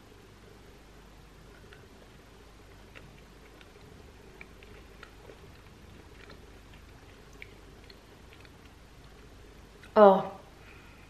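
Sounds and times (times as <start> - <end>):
faint steady hum: 0.0 - 11.0
person chewing: 1.4 - 10.0.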